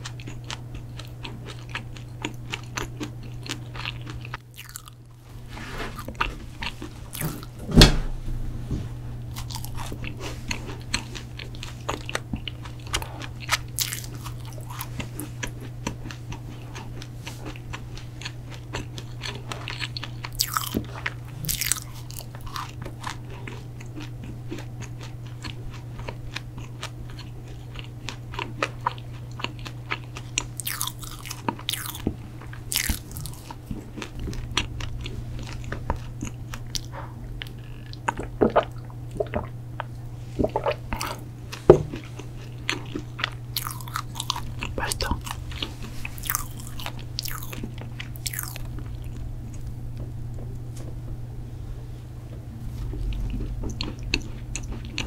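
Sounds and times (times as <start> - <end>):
crunchy cookie chewing: 0.0 - 7.6, 9.2 - 51.0, 52.7 - 55.0
low hum: 0.0 - 23.7, 31.6 - 55.0.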